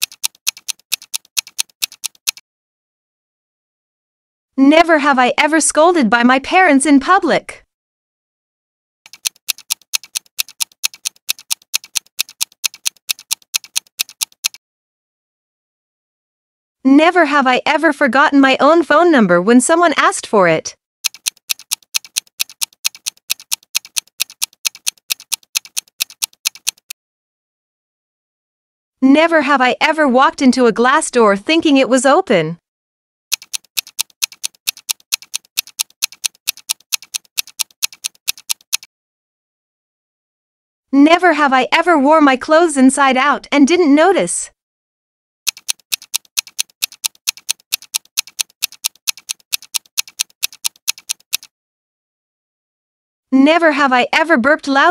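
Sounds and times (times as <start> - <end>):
countdown timer ticking: 0.0 - 2.4, 9.1 - 14.6, 21.1 - 26.9, 33.3 - 38.9, 45.5 - 51.5.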